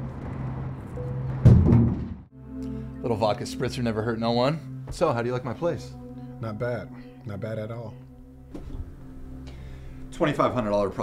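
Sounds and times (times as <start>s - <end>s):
background music: 0.0s - 11.0s
heavy thunk: 1.4s - 2.2s
sustained musical chord: 2.3s - 11.0s.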